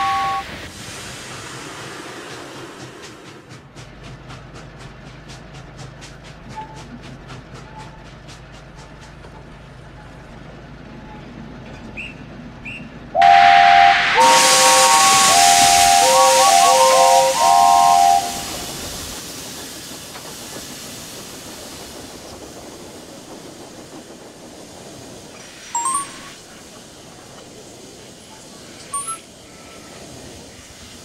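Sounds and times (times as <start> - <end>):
steam locomotive whistles: 0.0 - 0.7, 11.9 - 19.1
rush of escaping steam: 0.0 - 9.2, 13.2 - 31.0.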